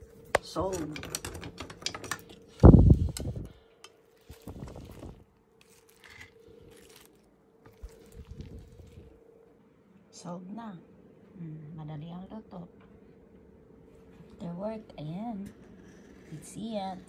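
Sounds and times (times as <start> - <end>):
faint steady hum: 0.0 - 17.0
kitchen utensils and dishes clatter: 0.4 - 2.5.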